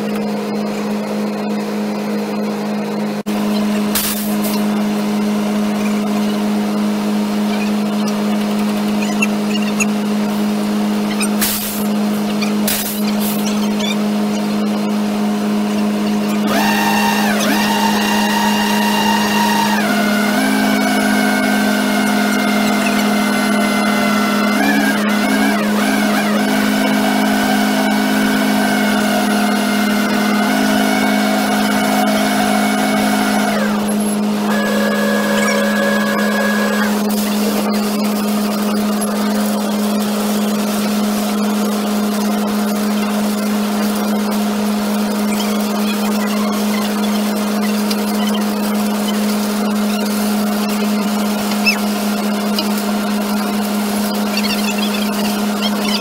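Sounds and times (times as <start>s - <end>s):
concrete mixer truck droning: 0.0s - 56.0s
higher whining tones: 0.0s - 56.0s.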